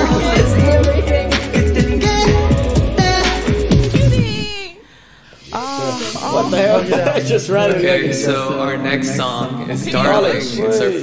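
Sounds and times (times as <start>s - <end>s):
voices exclaiming and talking: 5.4s - 11.0s.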